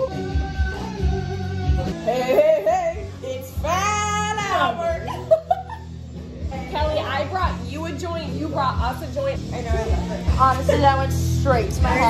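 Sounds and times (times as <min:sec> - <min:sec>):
music with steady bass line: 0:00.0 - 0:12.0.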